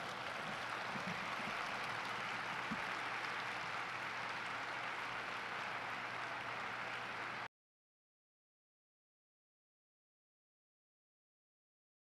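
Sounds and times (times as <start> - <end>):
audience applauding: 0.0 - 7.5.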